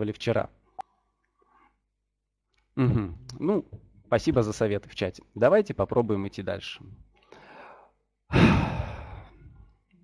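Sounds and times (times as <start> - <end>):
man sighing: 8.3 - 9.5.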